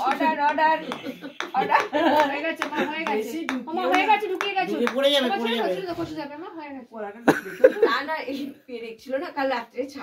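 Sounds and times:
sharp hand claps: 0.0s - 5.4s.

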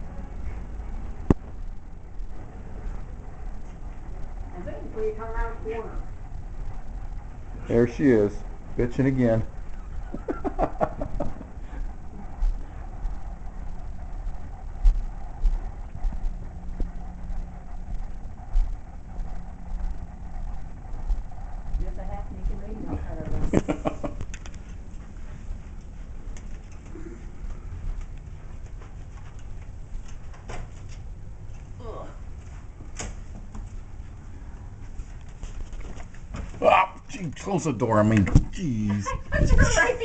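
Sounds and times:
steady hum: 0.0s - 40.0s.

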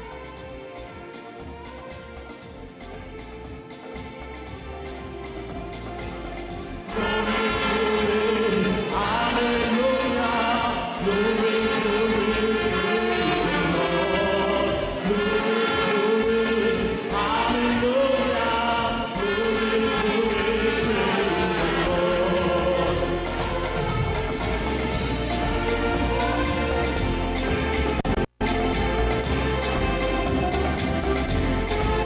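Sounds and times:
electronic keyboards: 0.0s - 32.0s
gospel orchestra playing: 0.0s - 32.0s
voices singing held notes: 6.7s - 32.0s.

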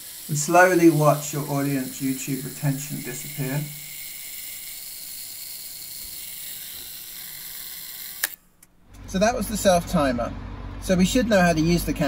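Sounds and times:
camera self-timer whirring buzz: 0.0s - 9.2s.

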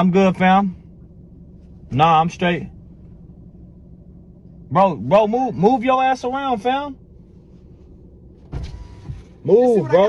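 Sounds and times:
car cabin background noise: 0.0s - 10.0s.

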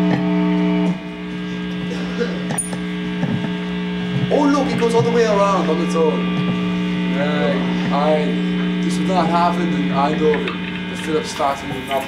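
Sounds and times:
amplifier electrical hum: 0.0s - 12.0s
indistinct talking: 1.3s - 12.0s.

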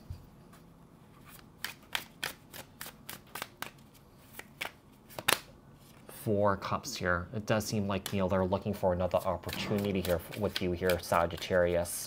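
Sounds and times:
cards snapping and flicking: 1.6s - 5.5s.

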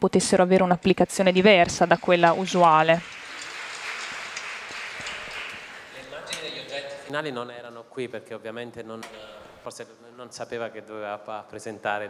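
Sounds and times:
audience clapping: 1.2s - 7.1s.

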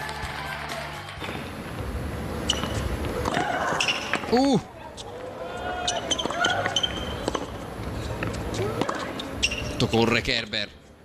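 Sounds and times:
tennis ball bouncing: 2.4s - 4.5s, 5.9s - 9.7s
shoes squeaking on court: 2.4s - 10.2s
racket hitting tennis ball: 5.9s - 9.6s.

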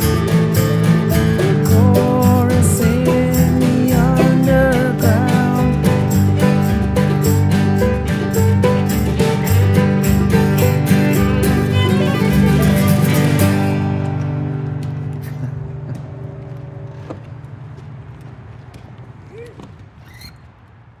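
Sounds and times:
acoustic guitar and violin folk music: 0.0s - 15.4s.

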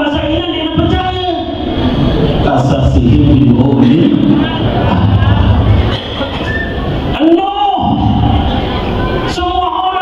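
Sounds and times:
man speaking over loudspeaker: 0.0s - 1.7s, 2.4s - 5.7s, 7.1s - 8.5s, 9.2s - 10.0s.

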